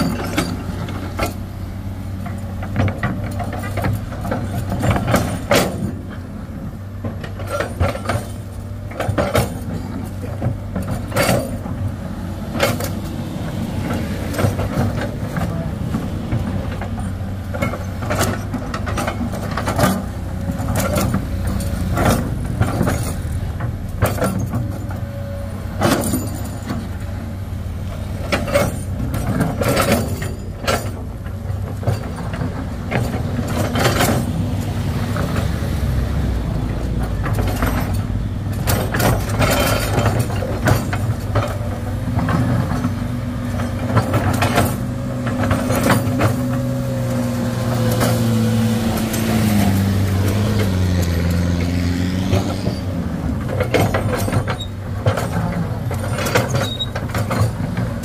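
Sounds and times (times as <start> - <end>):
excavator diesel engine: 0.0 - 58.0
stone and steel clanking: 37.1 - 47.2.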